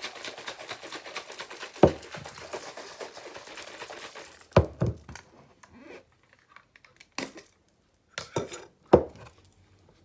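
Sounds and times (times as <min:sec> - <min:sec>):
plastic shaker bottle rattling: 0:00.0 - 0:05.3
plastic containers knocking on table: 0:01.8 - 0:02.0, 0:04.6 - 0:05.2.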